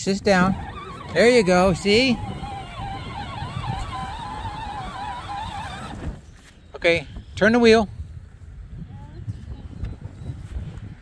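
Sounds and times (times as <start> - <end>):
electric toy motor whining: 0.0 - 6.2.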